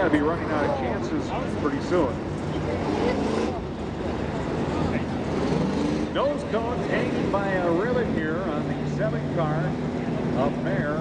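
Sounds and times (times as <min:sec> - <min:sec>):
race car engines running: 0:00.0 - 0:11.0.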